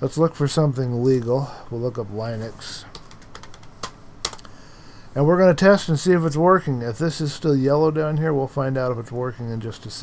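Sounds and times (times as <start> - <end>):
keyboard keystroke clicks: 2.9 - 4.5.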